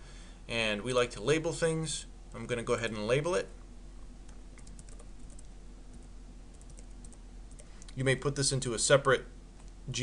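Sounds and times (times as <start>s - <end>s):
computer keyboard typing: 4.3s - 7.8s.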